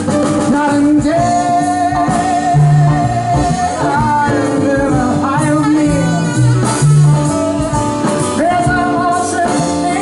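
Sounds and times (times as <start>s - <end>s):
drums: 0.0s - 10.0s
upright double bass: 0.0s - 10.0s.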